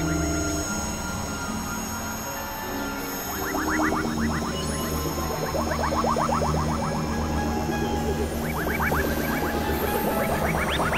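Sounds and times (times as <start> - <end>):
low electronic drone: 0.0 - 10.9.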